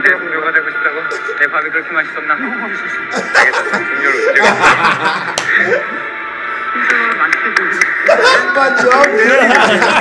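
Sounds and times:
background music: 0.0 - 10.0
men laughing: 3.1 - 6.1, 8.0 - 10.0.

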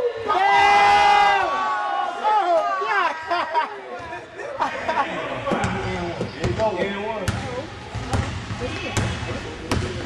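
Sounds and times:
basketball bouncing on gym floor: 7.2 - 10.0.

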